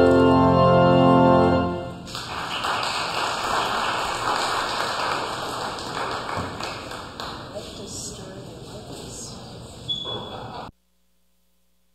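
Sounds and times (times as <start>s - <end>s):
congregation applauding: 1.9s - 7.8s.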